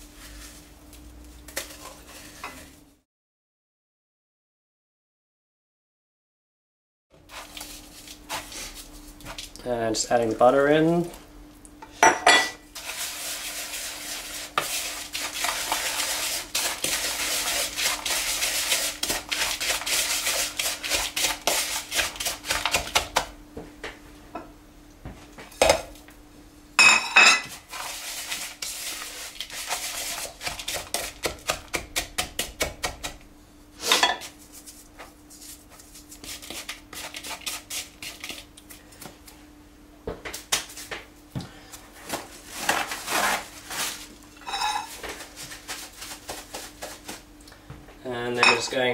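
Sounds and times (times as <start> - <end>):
utensil scraping around a bowl: 7.3 - 9.5, 12.7 - 22.8, 27.4 - 31.4, 33.8 - 38.7, 42.5 - 47.2
utensil clinking against bowl: 48.4 - 48.8.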